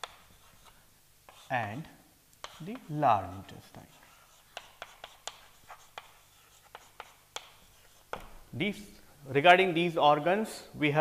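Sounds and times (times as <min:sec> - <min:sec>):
pen tapping and scratching: 0:00.0 - 0:01.5, 0:02.4 - 0:03.0, 0:04.0 - 0:08.4.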